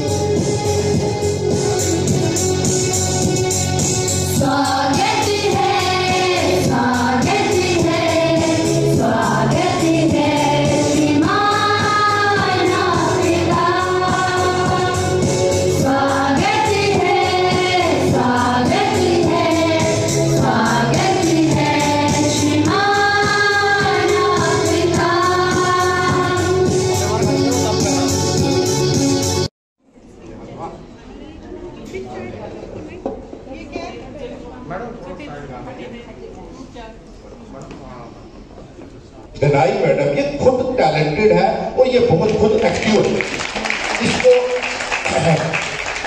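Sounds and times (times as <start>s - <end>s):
instrumental accompaniment: 0.0s - 29.5s
women singing together: 4.3s - 26.8s.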